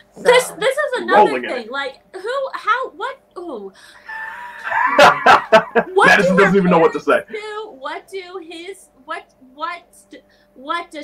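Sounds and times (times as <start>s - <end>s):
woman laughing: 0.3s - 1.6s, 4.4s - 7.6s
woman's high-pitched exclamation: 5.9s - 6.9s.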